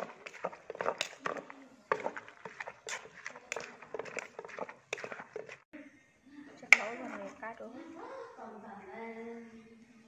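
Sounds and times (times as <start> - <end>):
pestle clicking against mortar: 0.0 - 5.6.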